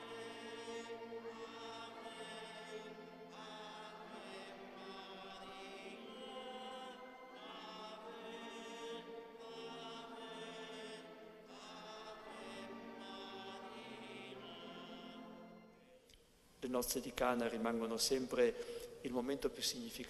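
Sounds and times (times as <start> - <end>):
slow sacred singing: 0.0 - 20.0.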